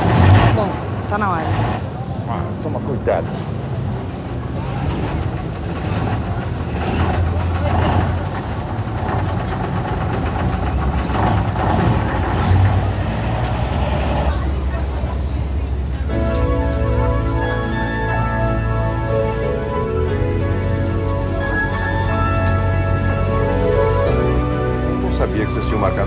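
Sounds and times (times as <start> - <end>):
bus engine rumbling: 0.0 - 26.0
indistinct voices: 0.0 - 26.0.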